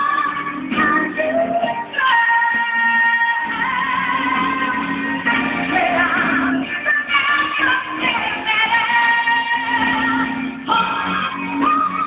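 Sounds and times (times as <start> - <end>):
live band playing chords: 0.0 - 12.0
woman singing with vibrato: 0.0 - 12.0.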